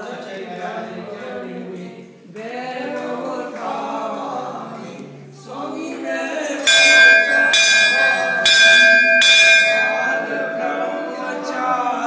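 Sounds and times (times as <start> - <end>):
faint chanting voices: 0.0 - 12.0
temple bell ringing: 6.6 - 11.8.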